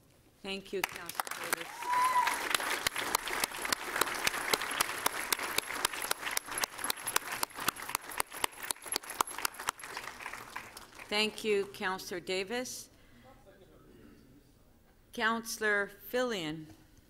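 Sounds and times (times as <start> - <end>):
people applauding: 0.8 - 11.4.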